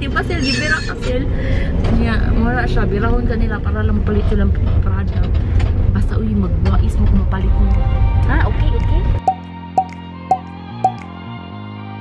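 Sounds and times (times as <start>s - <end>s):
car road rumble: 0.0s - 9.2s
quiet music with plinking notes: 9.3s - 11.1s.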